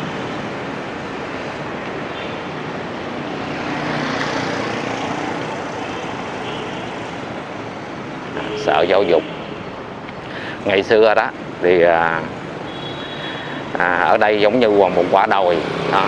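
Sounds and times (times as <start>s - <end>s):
passing motorbikes and cars: 0.0s - 16.0s.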